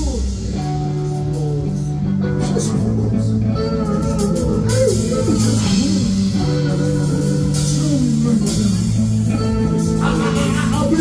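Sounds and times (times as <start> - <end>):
bass guitar: 0.0 - 11.0
drums: 0.0 - 11.0
electric guitars: 0.0 - 11.0.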